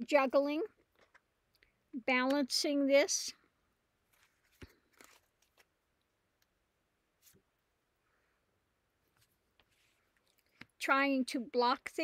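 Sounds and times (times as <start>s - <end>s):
cards being handled: 4.1s - 5.8s.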